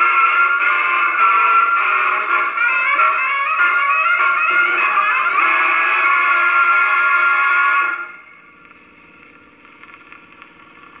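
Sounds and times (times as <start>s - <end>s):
gramophone record music: 0.0s - 11.0s.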